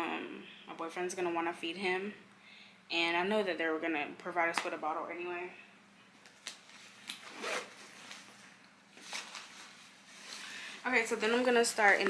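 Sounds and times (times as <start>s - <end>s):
zipper on fabric bag being pulled: 7.2s - 8.0s.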